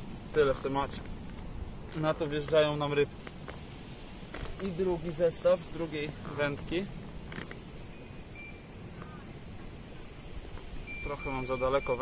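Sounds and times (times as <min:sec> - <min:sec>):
steady low rumble: 0:00.0 - 0:12.0
handling rustle: 0:00.5 - 0:04.9, 0:06.1 - 0:07.8
faint high chirps: 0:07.8 - 0:09.3, 0:10.8 - 0:12.0.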